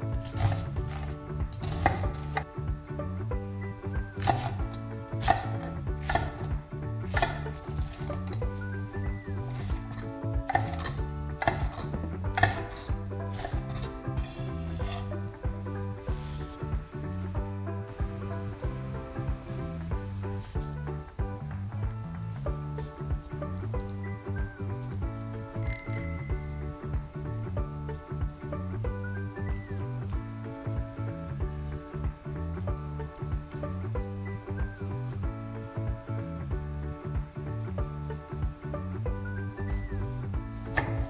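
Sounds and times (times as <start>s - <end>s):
light background music: 0.0s - 41.0s
knife striking wooden cutting board: 0.3s - 2.5s, 5.2s - 6.5s, 7.1s - 8.0s, 10.5s - 12.8s
bright bell-like chime: 25.6s - 26.8s.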